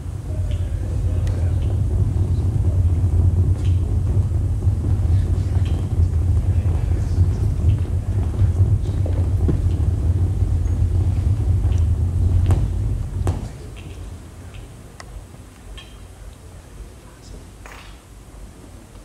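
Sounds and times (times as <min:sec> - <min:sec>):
deep rumbling synthesizer drone: 0:00.0 - 0:15.5.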